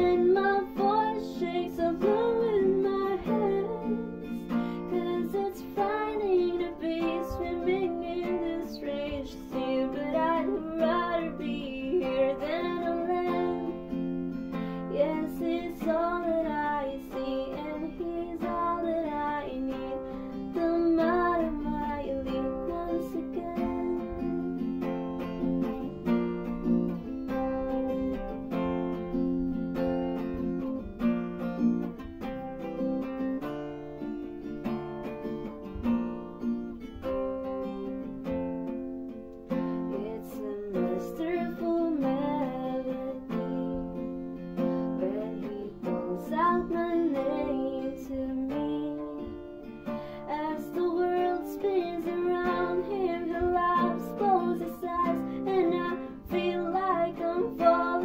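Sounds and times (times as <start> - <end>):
woman singing: 0.0 - 26.3, 39.5 - 58.0
acoustic guitar strumming: 0.0 - 58.0.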